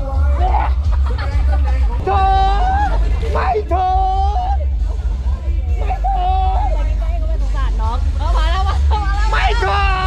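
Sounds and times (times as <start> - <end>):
loud music with heavy bass: 0.0 - 10.0
street crowd babble: 0.0 - 10.0.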